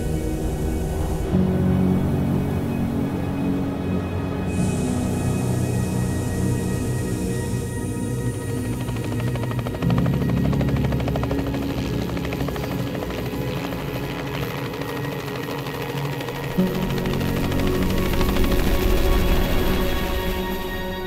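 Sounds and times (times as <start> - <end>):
background music: 0.0 - 21.0
helicopter rotor beating: 0.0 - 21.0.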